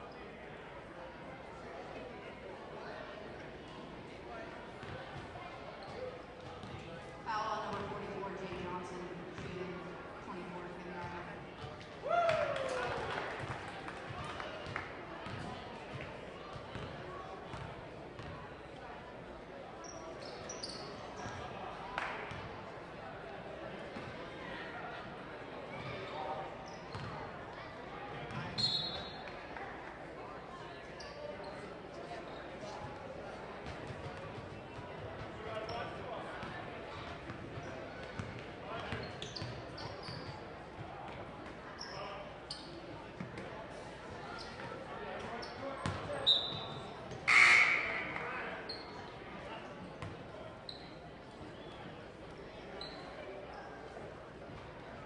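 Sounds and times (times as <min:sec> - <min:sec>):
murmur of voices: 0:00.0 - 0:55.0
sneaker squeaks: 0:05.8 - 0:06.8, 0:19.8 - 0:21.4, 0:26.6 - 0:27.2, 0:28.3 - 0:29.3, 0:31.0 - 0:32.6, 0:38.2 - 0:40.5, 0:41.8 - 0:42.9, 0:45.3 - 0:49.1, 0:50.0 - 0:51.8, 0:52.7 - 0:53.2.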